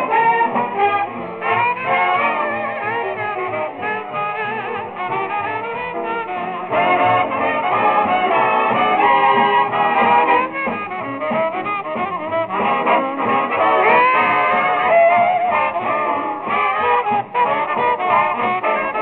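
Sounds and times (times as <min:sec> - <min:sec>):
swing big band playing: 0:00.0 - 0:19.0
trumpets and trombones: 0:00.0 - 0:19.0.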